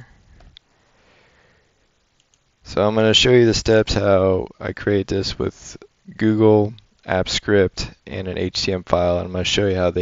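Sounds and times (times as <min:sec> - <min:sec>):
faint breath through nose: 0:00.0 - 0:01.8.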